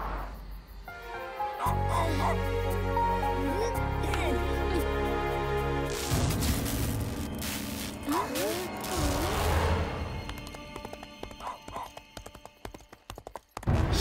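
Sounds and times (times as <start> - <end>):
eerie background music: 0.0 - 12.5
hoofbeats clip-clopping: 10.1 - 14.0.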